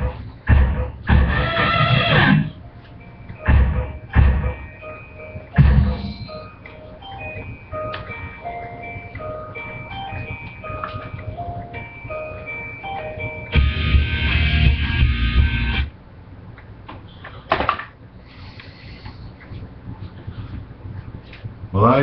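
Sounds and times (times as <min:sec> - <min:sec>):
loud music with heavy bass: 0:00.0 - 0:02.6, 0:05.6 - 0:06.4, 0:13.5 - 0:15.9
simple electronic melody: 0:01.3 - 0:15.9.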